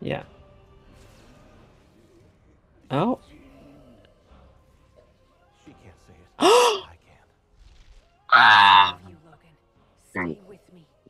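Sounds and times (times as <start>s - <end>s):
man gasping oh: 6.4s - 6.9s.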